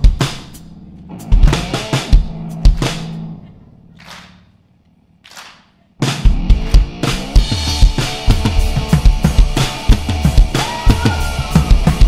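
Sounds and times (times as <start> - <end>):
full band with drum kit: 0.0 - 3.4, 5.3 - 12.0.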